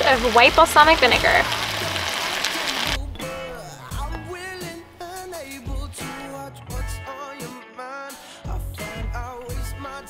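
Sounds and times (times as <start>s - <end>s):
pasta sizzling in a pot: 0.0s - 3.0s
guitar background music: 0.0s - 10.0s.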